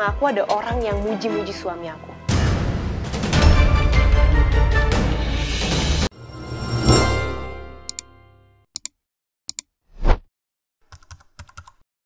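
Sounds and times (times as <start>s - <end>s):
keyboard typing clicks: 10.9s - 11.8s.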